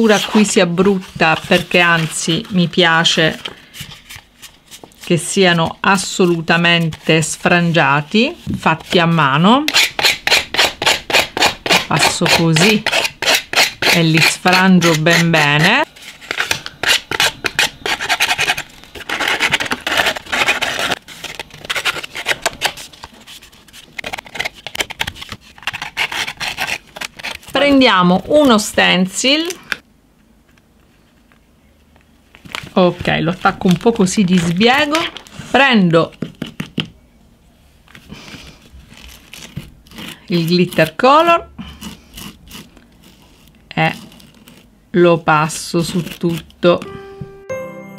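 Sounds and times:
knife blade scraping card: 0:09.7 - 0:27.6, 0:41.8 - 0:44.6.

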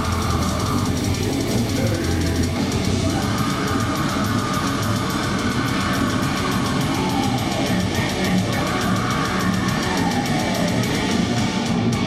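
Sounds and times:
distorted guitar and bass riffing: 0:00.0 - 0:12.0
fast drums: 0:00.0 - 0:12.0
rapid cymbal strokes: 0:00.0 - 0:12.0.

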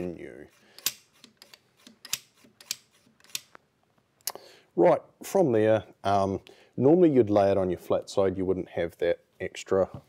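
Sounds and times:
rifle bolt metallic clicks: 0:00.8 - 0:03.6.

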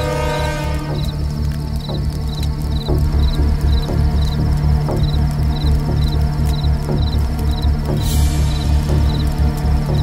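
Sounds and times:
pulsing low bass drone: 0:00.0 - 0:10.0.

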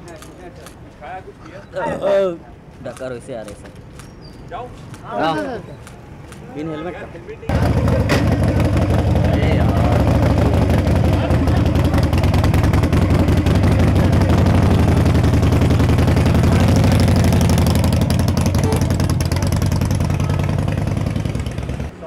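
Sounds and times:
motorcycle engine running: 0:07.5 - 0:22.0.

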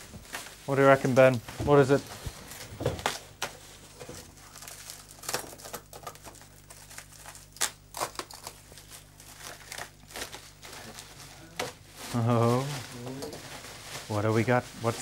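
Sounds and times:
bubble wrap crinkling: 0:00.0 - 0:15.0.

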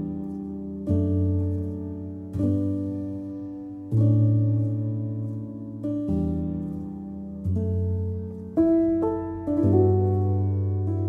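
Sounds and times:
soft solo piano chords: 0:00.0 - 0:11.0.

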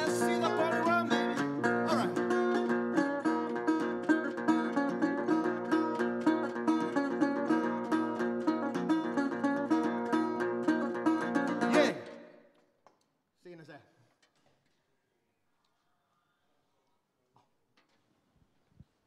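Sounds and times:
resonator guitar picking: 0:00.0 - 0:12.0.

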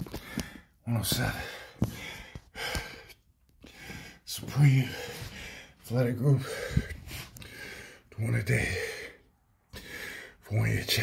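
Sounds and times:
man breathing hard: 0:00.0 - 0:10.4.

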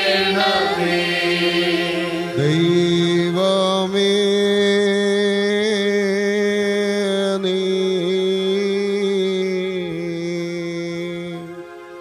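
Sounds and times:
voices chanting long notes: 0:00.0 - 0:03.8
keyboard drone: 0:00.0 - 0:12.0.

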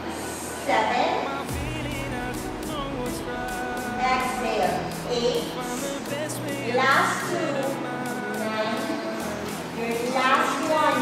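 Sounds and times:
background music: 0:00.0 - 0:11.0
woman speaking: 0:04.0 - 0:05.6, 0:06.7 - 0:07.4, 0:09.8 - 0:11.0.

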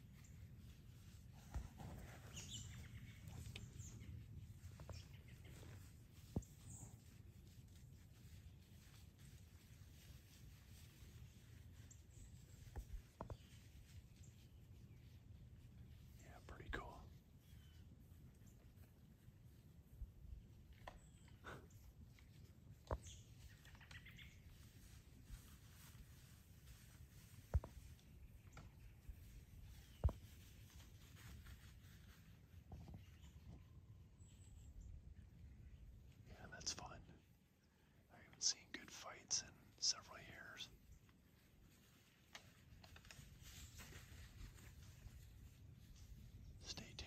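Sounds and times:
person whispering: 0:16.2 - 0:17.2, 0:36.2 - 0:37.3, 0:38.1 - 0:40.8, 0:46.6 - 0:47.0.

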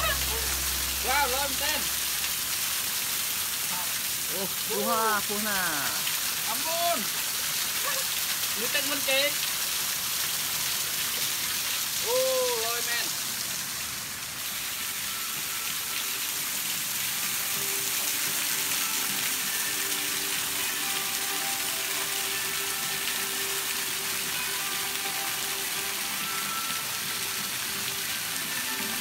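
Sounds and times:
river water rushing: 0:00.0 - 0:29.0.

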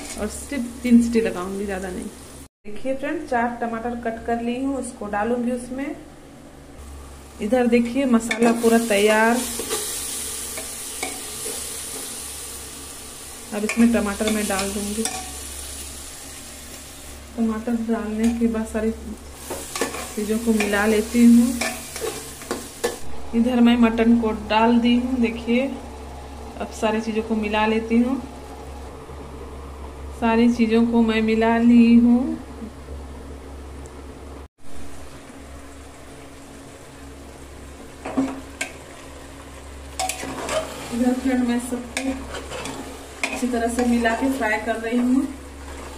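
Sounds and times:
masala sizzling in a pot: 0:00.0 - 0:02.5, 0:06.8 - 0:29.1, 0:34.6 - 0:45.9
low steady hum: 0:00.0 - 0:45.9
curry frying: 0:06.8 - 0:23.1, 0:34.6 - 0:45.9.

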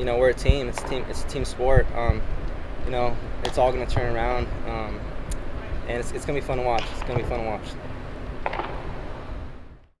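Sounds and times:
indoor hall background rumble: 0:00.0 - 0:09.9.

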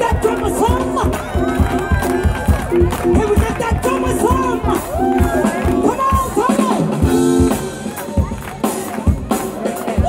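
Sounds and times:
drum kit: 0:00.0 - 0:10.0
electric guitar: 0:00.0 - 0:10.0
keyboard: 0:00.0 - 0:10.0
soul band playing: 0:00.0 - 0:10.0.

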